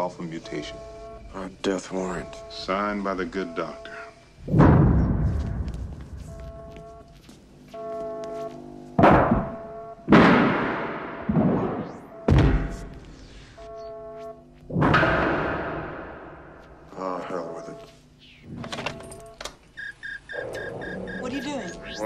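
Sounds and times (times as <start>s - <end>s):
heavy booming hits: 4.4s - 5.8s, 10.1s - 12.9s, 14.7s - 16.6s.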